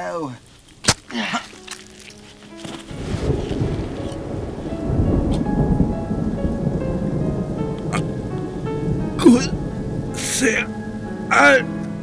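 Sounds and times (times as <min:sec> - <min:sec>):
rain: 0:00.0 - 0:12.0
music with long steady notes: 0:01.6 - 0:12.0
rolling thunder: 0:02.9 - 0:11.3.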